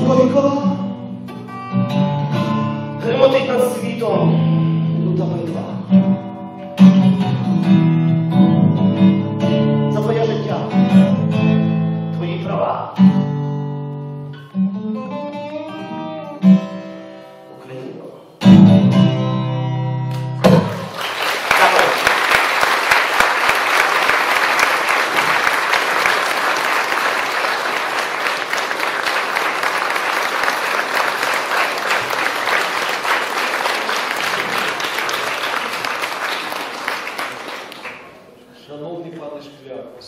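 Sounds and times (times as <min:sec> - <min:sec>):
audience applauding: 0:20.5 - 0:38.4.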